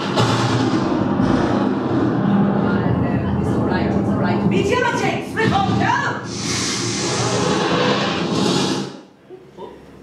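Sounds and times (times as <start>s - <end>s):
loud rushing hissing effect: 6.2s - 9.1s.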